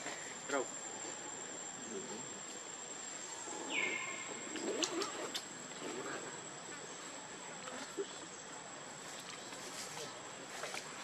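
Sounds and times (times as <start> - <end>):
outdoor hiss: 0.0 - 11.0.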